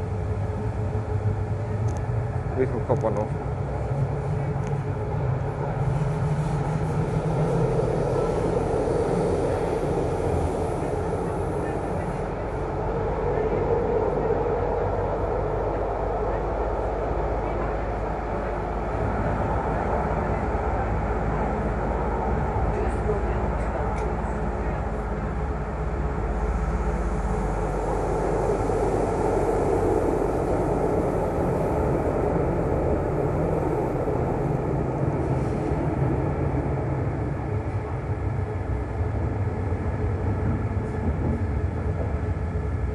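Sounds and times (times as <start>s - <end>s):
train wheels rumbling on rail: 0.0s - 42.9s.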